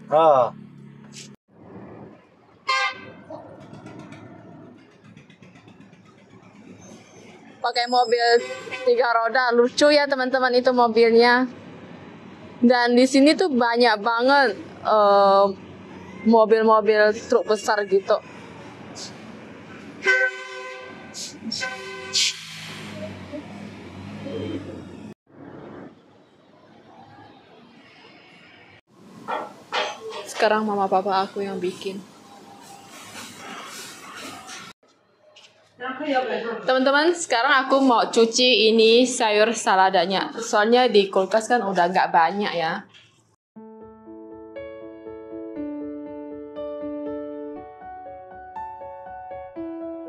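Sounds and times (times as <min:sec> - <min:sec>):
heavy truck engines passing: 0:00.0 - 0:08.8, 0:09.5 - 0:34.8
road traffic noise: 0:00.0 - 0:43.4
vehicle horn toot: 0:02.7 - 0:03.2, 0:20.0 - 0:22.5.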